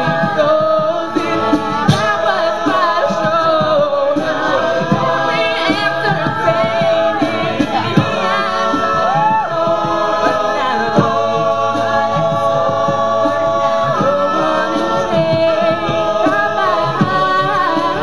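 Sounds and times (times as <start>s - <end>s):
low vocal percussion hits: 0.0s - 18.0s
sustained backing vocals: 0.0s - 18.0s
woman singing lead: 0.0s - 18.0s.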